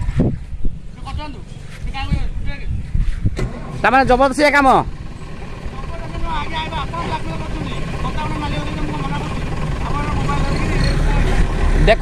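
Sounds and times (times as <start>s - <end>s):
wind rumbling on microphone: 0.0s - 5.8s.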